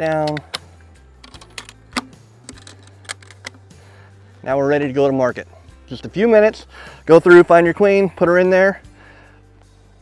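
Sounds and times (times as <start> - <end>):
metal latches clicking: 0.0 - 3.7.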